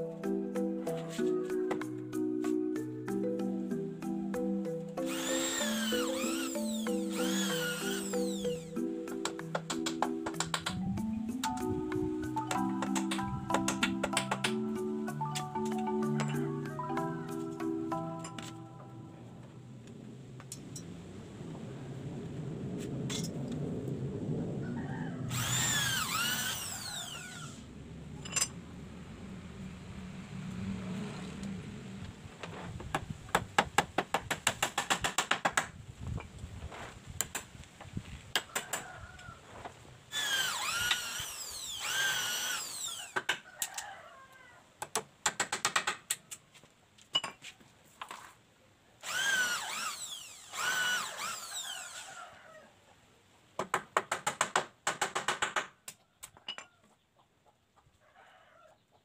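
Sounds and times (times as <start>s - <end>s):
cordless drill motor whine: 5.0s - 8.8s, 25.3s - 27.6s, 40.1s - 43.2s, 49.0s - 52.1s.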